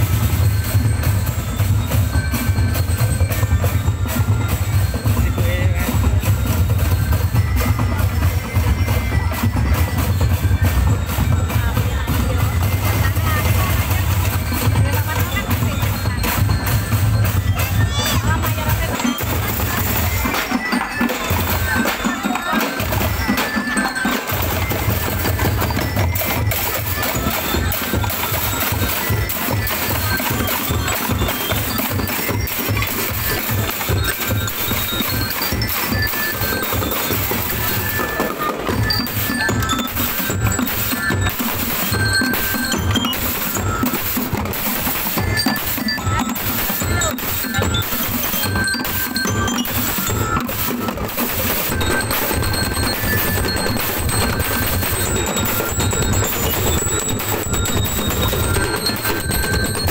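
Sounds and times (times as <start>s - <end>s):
ringing metal keyboard notes: 0.0s - 59.9s
snare drums: 0.0s - 59.9s.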